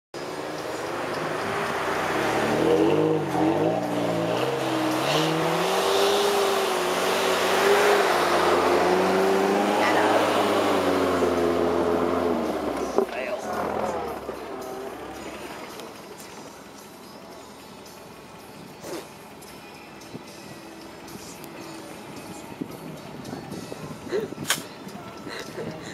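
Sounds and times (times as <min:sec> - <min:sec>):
truck engine revving: 0:00.2 - 0:18.0.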